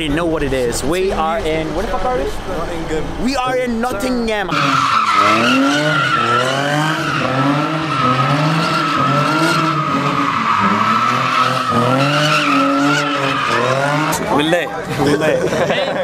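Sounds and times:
car engine revving: 0:00.0 - 0:15.2
tyres squealing: 0:01.3 - 0:14.6.

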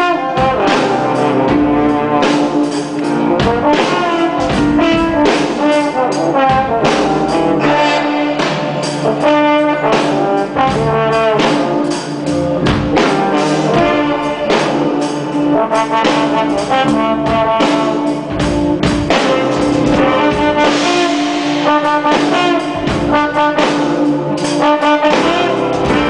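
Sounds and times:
brass section playing: 0:00.0 - 0:26.0
steady drum beat: 0:00.0 - 0:26.0.

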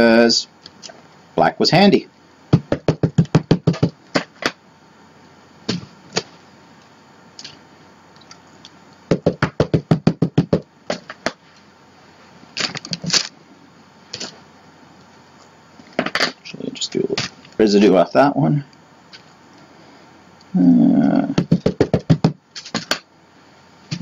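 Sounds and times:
louder knocks: 0:02.5 - 0:04.5, 0:09.1 - 0:11.4, 0:21.4 - 0:22.9
ink pad tapping rubber stamp: 0:02.5 - 0:04.6, 0:09.1 - 0:11.4, 0:21.4 - 0:23.0.

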